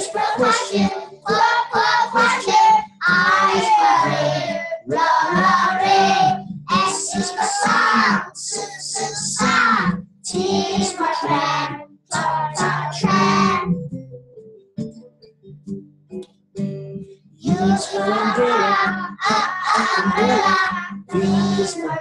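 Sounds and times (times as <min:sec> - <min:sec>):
children singing in unison: 0:00.0 - 0:13.7, 0:17.4 - 0:22.0.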